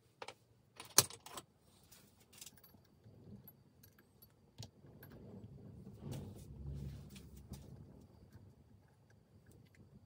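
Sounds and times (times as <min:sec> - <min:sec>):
metallic clicks of small steel parts: 0:02.2 - 0:05.2.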